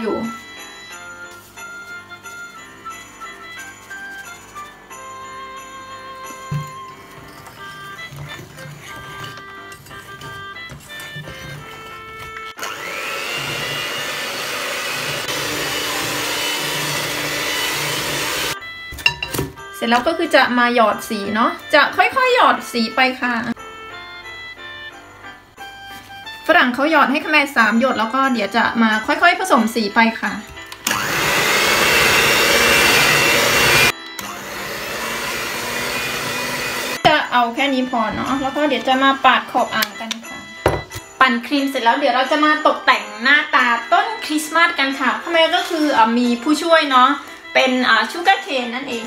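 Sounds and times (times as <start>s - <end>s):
background music: 0.0s - 49.0s
electric hand mixer whining: 6.4s - 18.6s, 30.7s - 37.0s.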